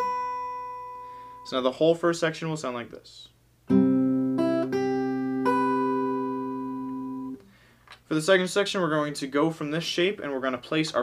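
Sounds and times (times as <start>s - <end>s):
fingerpicked acoustic guitar: 3.6s - 7.4s.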